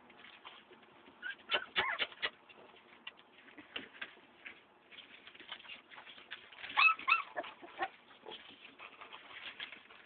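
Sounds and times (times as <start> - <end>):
dog whining: 1.2 - 2.4, 6.6 - 8.4
faint clicks and taps: 2.0 - 6.8.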